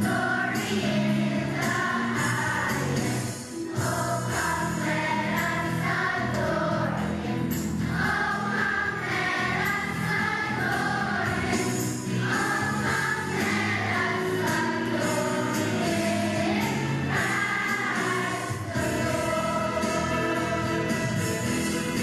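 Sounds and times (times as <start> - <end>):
children's choir singing: 0.0 - 22.0
musical accompaniment: 0.0 - 22.0.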